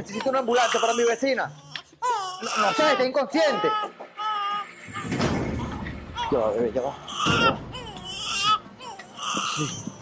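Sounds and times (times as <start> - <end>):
baby crying: 0.0 - 10.0.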